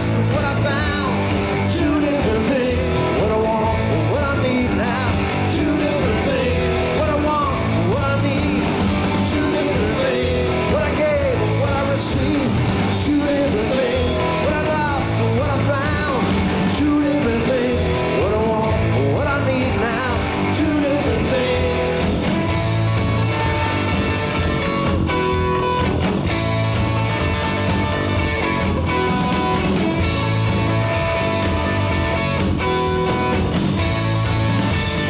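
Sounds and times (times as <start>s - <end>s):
man singing: 0.0s - 22.2s
electric guitar lead: 0.0s - 35.0s
live rock band: 0.0s - 35.0s.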